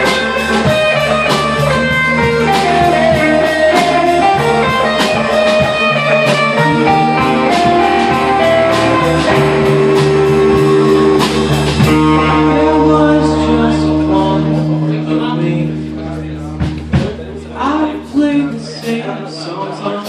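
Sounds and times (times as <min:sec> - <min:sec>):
steady beat of sharp hits: 0:00.0 - 0:18.8
amplified electric guitars: 0:00.0 - 0:19.3
bass guitar: 0:00.0 - 0:19.4.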